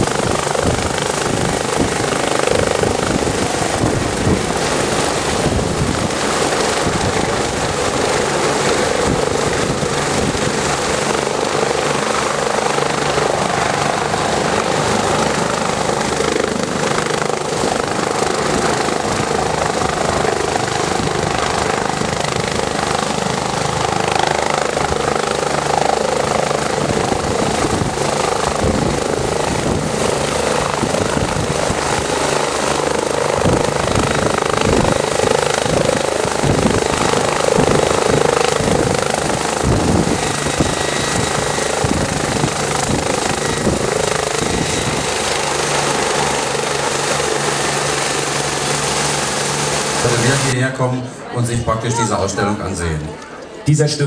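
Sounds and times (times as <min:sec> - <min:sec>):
helicopter turbines and rotor: 0:00.0 - 0:54.0.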